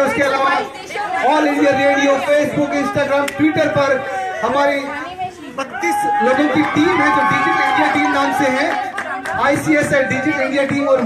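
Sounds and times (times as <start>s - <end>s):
voices chattering: 0.0s - 11.0s
man talking: 5.6s - 8.8s.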